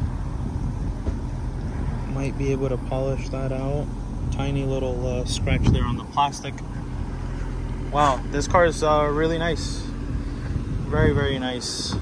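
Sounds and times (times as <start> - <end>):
low background rumble: 0.0 - 12.0
wind buffeting microphone: 0.0 - 12.0.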